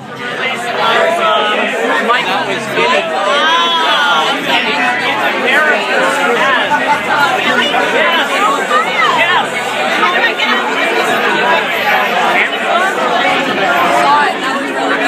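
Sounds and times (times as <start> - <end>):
crowd chatter: 0.0 - 15.0.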